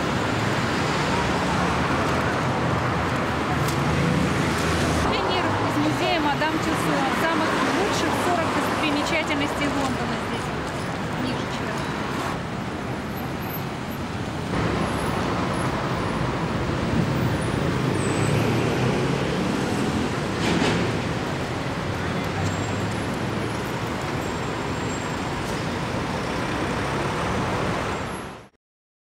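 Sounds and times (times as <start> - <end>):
rush of traffic noise: 0.0 - 28.5
steady traffic noise: 0.0 - 28.6.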